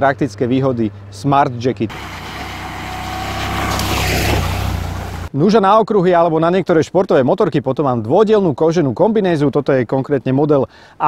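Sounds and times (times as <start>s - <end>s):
motorcycle riding past: 1.9s - 5.3s.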